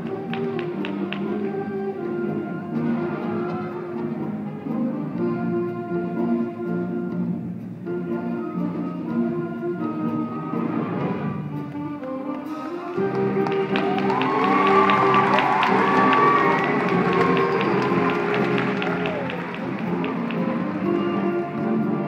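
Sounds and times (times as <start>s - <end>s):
jazz band playing a tango: 0.0s - 22.0s
audience cheering and clapping: 12.7s - 22.0s.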